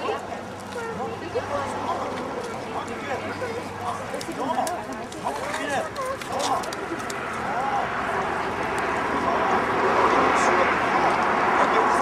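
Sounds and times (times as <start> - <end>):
young children chattering: 0.0 - 12.0
steady rushing noise: 5.1 - 12.0.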